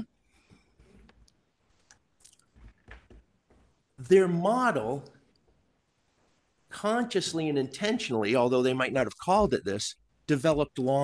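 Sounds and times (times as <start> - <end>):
soft rustles at a lectern: 0.3 - 4.0, 5.3 - 6.7.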